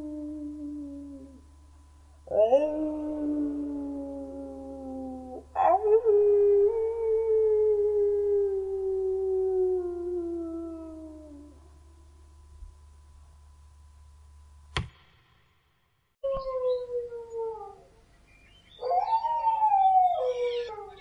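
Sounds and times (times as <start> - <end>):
dog howling: 18.8 - 21.0.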